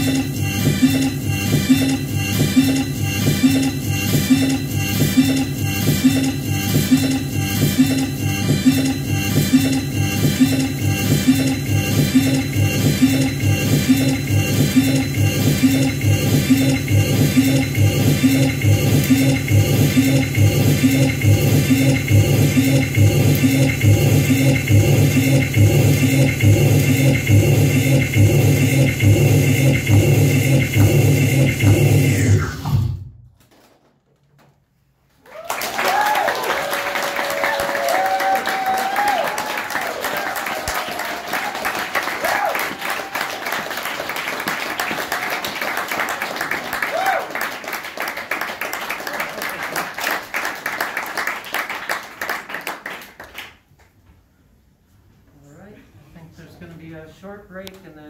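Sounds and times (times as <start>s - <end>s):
electronic noise music: 0.0s - 33.2s
audience applauding and cheering: 35.2s - 53.6s.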